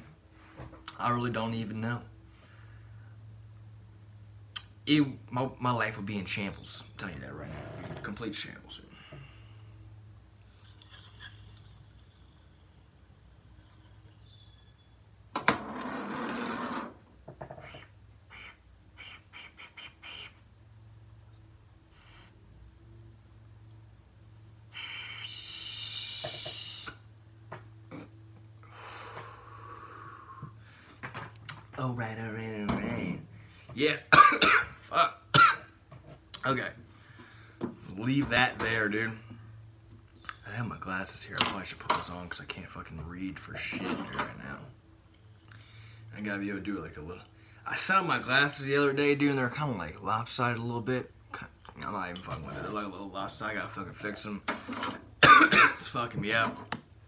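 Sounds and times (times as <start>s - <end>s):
man coughing: 34.1s - 35.7s, 55.2s - 55.9s.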